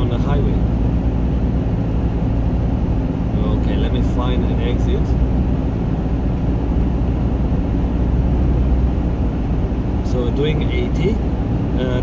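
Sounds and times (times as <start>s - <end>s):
engine and tyre rumble in cabin: 0.0s - 12.0s.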